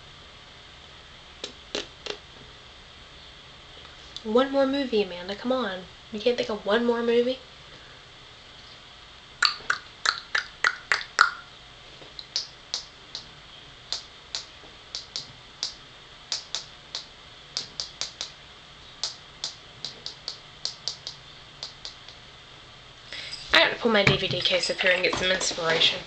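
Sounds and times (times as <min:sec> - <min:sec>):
sharp irregular clicks: 0:13.9 - 0:18.4, 0:19.0 - 0:22.2.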